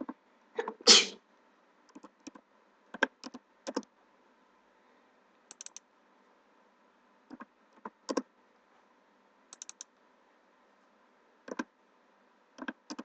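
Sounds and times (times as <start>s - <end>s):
keyboard and mouse clicks: 1.9s - 3.9s, 5.5s - 5.8s, 7.3s - 8.3s, 9.5s - 9.9s, 11.4s - 11.7s, 12.6s - 13.0s.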